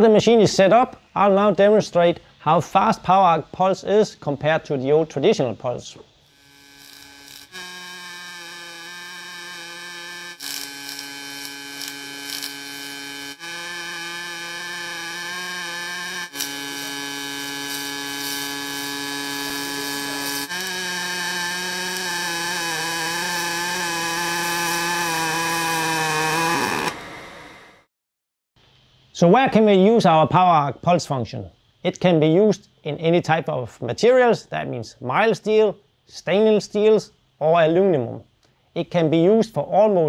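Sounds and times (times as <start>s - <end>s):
welding arc buzzing: 6.2s - 27.9s.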